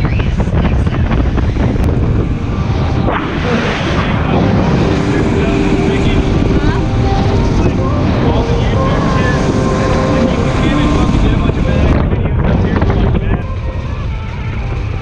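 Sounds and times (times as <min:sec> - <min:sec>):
outboard engine: 0:00.0 - 0:15.0
wind buffeting microphone: 0:00.0 - 0:15.0
water rushing and spray: 0:01.0 - 0:12.9.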